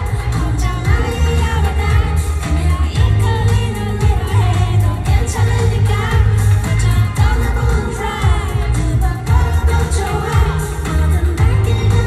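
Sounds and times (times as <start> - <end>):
bass-heavy beat: 0.0 - 12.0
woman singing: 0.0 - 12.0.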